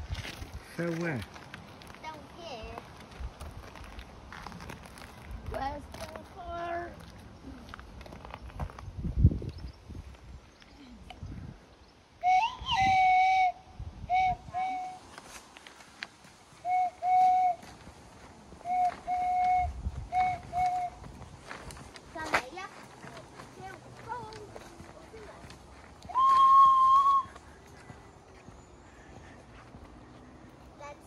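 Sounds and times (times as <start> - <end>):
person whistling: 12.2 - 15.0, 16.6 - 17.6, 18.6 - 21.0, 26.1 - 27.4.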